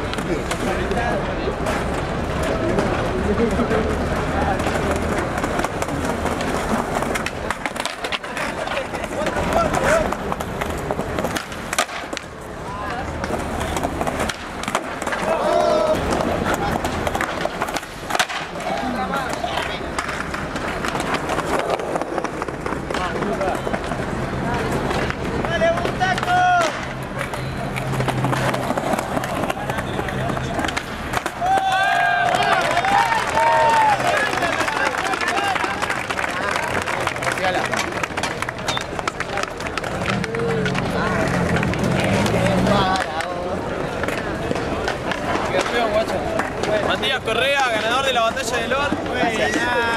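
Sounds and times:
skateboard wheels rolling: 0:00.0 - 0:49.9
skateboard pops and landings clacking: 0:04.6 - 0:12.3, 0:12.9 - 0:23.9
crowd shouting: 0:15.1 - 0:16.8, 0:30.6 - 0:37.4.

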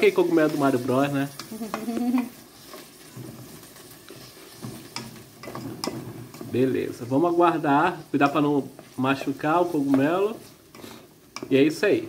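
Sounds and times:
food sizzling in a pot: 0:00.0 - 0:12.0
wooden spoon scraping a pot: 0:00.0 - 0:12.0.

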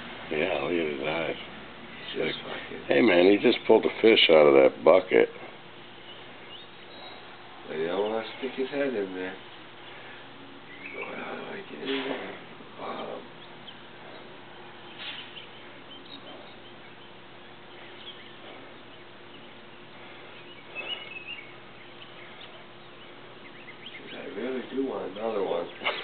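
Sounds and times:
faint steady hum: 0:00.0 - 0:26.0
faint bird chirps: 0:05.9 - 0:12.0, 0:13.0 - 0:26.0.

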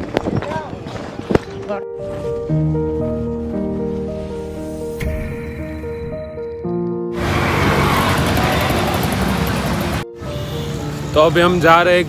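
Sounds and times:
city road traffic: 0:06.6 - 0:12.0
vehicle engines running: 0:07.2 - 0:12.0.

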